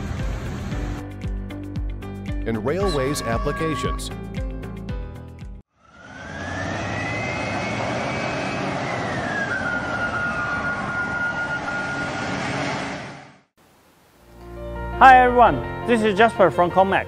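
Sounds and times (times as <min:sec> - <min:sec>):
heavy vehicle passing: 0:05.8 - 0:13.4
whine rising and falling: 0:05.8 - 0:14.2.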